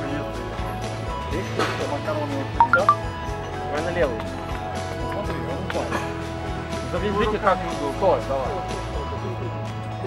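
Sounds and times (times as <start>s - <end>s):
short high beeps: 2.6s - 3.0s.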